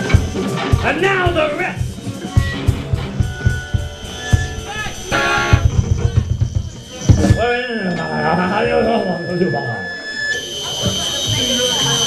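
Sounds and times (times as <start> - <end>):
drum kit hits: 0.0 - 7.4
electric guitar: 0.0 - 7.4.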